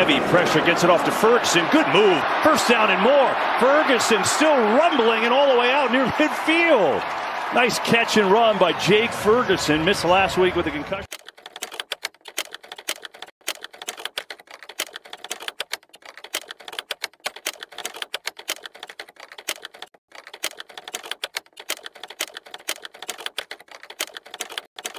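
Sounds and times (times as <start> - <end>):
rapid keyboard typing: 11.1 - 24.9.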